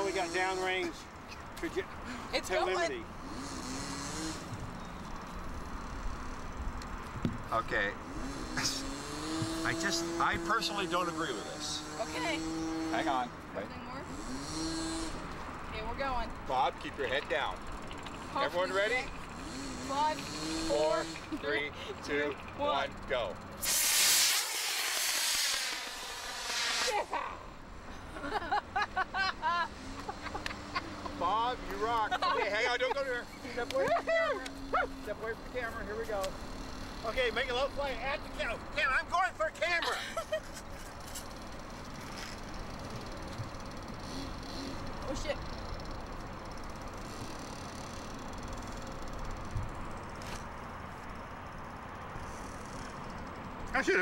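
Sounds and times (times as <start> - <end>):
rocket motor hissing: 23.5 - 27.2
laughter: 28.1 - 31.2, 32.0 - 33.1, 33.7 - 34.4, 39.8 - 40.9
voices: 30.0 - 40.1.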